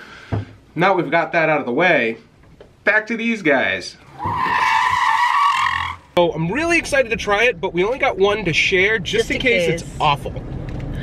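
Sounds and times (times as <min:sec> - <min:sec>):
tyre screech: 0:04.0 - 0:06.1.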